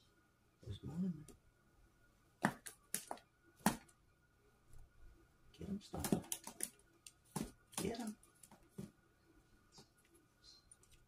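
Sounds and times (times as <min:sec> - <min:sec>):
claws tapping on plastic floor: 0:02.4 - 0:03.9, 0:06.0 - 0:09.0.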